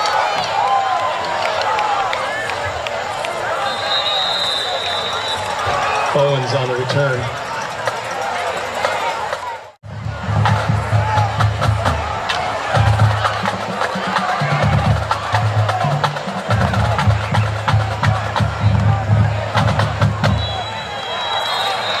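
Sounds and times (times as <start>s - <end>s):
crowd chatter: 0.0s - 22.0s
referee whistle blast: 3.5s - 6.1s, 20.2s - 22.0s.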